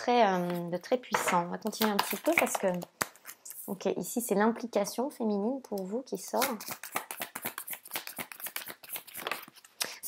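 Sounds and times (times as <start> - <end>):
cards being shuffled: 1.7 - 3.7, 6.4 - 10.0.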